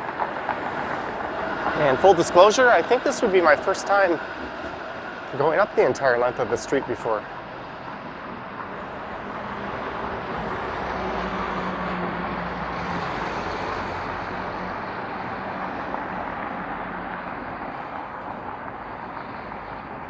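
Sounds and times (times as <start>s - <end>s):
traffic hum: 0.0s - 20.0s
vehicle passing: 0.0s - 20.0s.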